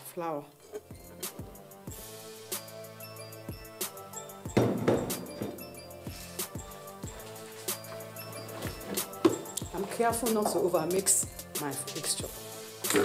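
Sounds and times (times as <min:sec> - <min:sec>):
background music with held tones: 0:00.0 - 0:13.0
spatula knocking metal bowl: 0:04.6 - 0:05.7.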